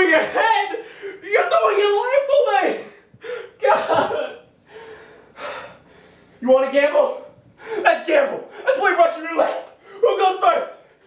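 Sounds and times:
man gasping and breathing hard: 0:00.8 - 0:01.2, 0:03.0 - 0:03.6, 0:04.7 - 0:06.3, 0:07.6 - 0:07.9.

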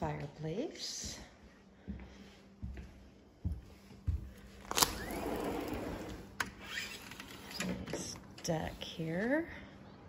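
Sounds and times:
door scraping open: 0:04.9 - 0:08.1.

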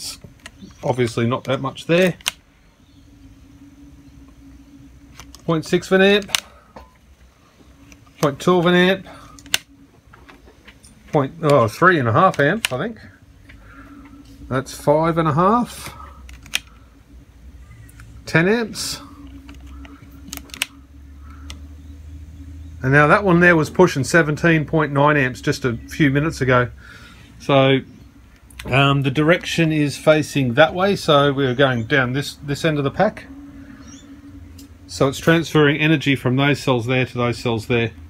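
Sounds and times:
faint steady low hum: 0:00.0 - 0:38.0
plastic clicks of a clamp meter: 0:19.2 - 0:20.8.

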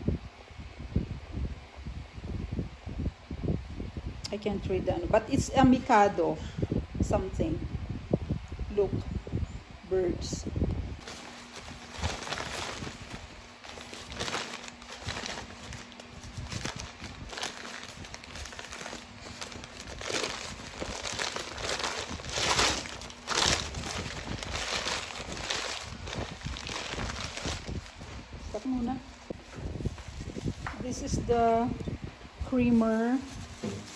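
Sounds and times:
packing paper crinkling: 0:10.9 - 0:31.0, 0:33.2 - 0:33.9.

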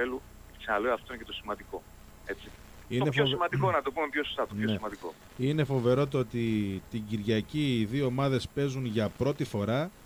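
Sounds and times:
man talking on radio: 0:00.0 - 0:05.8.

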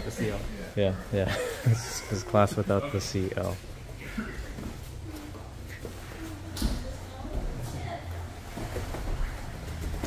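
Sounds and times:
gym room noise: 0:00.0 - 0:10.0.

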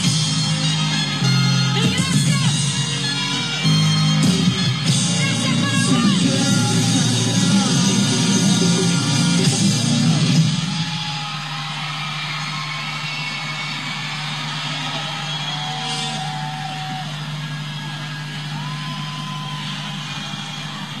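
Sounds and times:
crowd cheering: 0:00.0 - 0:21.0
whistles: 0:14.8 - 0:21.0.

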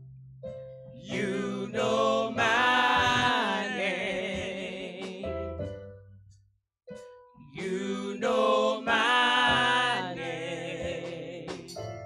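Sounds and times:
gospel singers: 0:01.0 - 0:05.6, 0:07.5 - 0:12.0.

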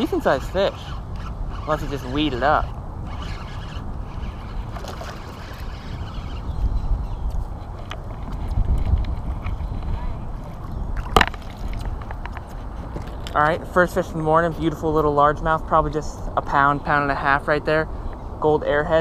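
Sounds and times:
water lapping against boat hull: 0:07.7 - 0:13.1.

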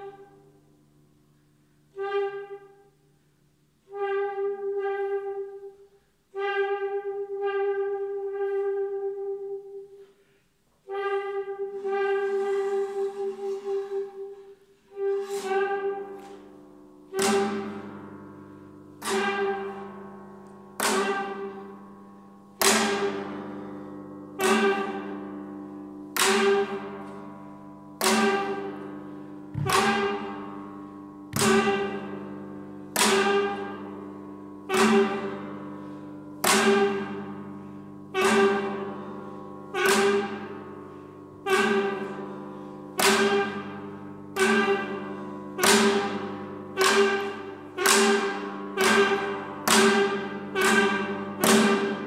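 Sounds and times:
saxophone neck held notes: 0:03.8 - 0:52.0.

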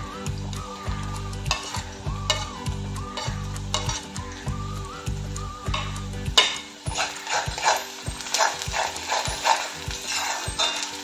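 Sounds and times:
onions sizzling: 0:00.0 - 0:11.0.

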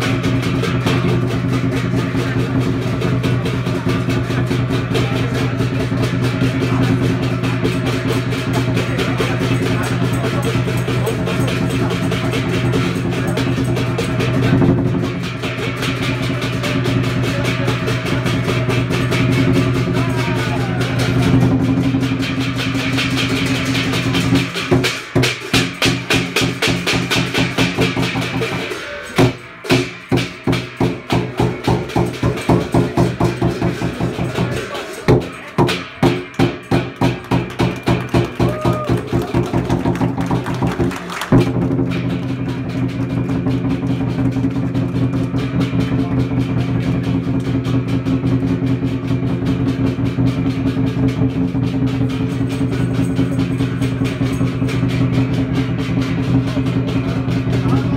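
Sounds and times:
cymbals clashing: 0:00.0 - 0:57.9
drum beating: 0:00.0 - 0:57.9.

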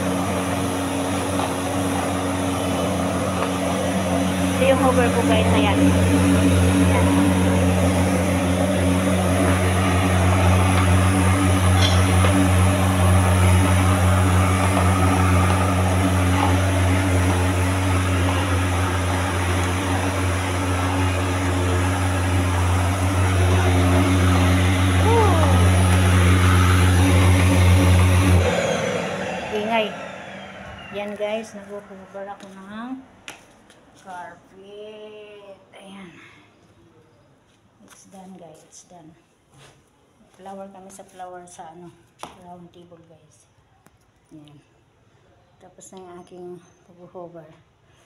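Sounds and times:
vacuum nozzle pushed over rug: 0:00.0 - 0:29.1
vacuum cleaner running: 0:00.0 - 0:32.5.

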